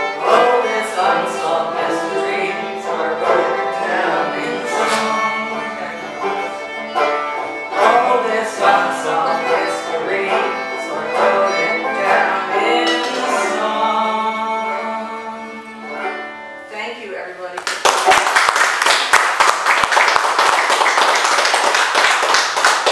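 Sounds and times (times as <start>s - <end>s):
banjo and fiddle folk music: 0.0s - 16.8s
audience clapping: 17.6s - 22.9s.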